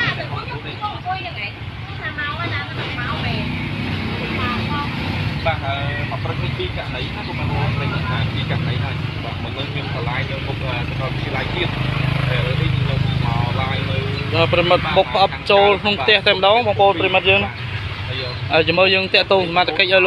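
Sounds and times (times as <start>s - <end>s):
low rumble of engines: 0.0s - 20.0s
people talking: 0.0s - 20.0s.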